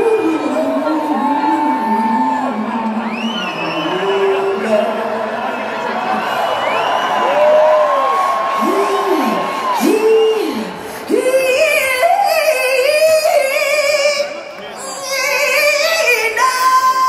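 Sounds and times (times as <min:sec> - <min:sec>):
crowd noise: 0:00.0 - 0:17.0.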